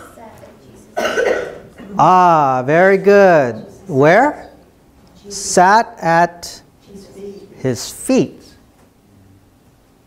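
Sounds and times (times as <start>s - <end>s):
person coughing: 1.0s - 2.0s.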